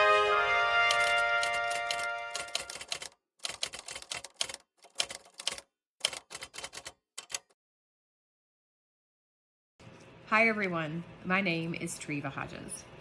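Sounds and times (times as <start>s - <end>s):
music: 0.0s - 2.8s
typewriter key clacks: 0.9s - 7.5s.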